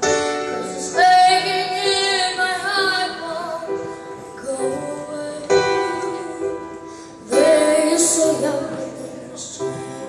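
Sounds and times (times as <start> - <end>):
girl singing pop ballad: 0.2 - 10.0.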